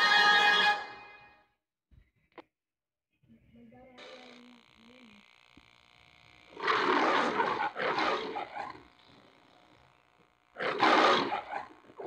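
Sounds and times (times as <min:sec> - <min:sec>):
lion roaring: 0:06.6 - 0:08.8, 0:10.6 - 0:11.8.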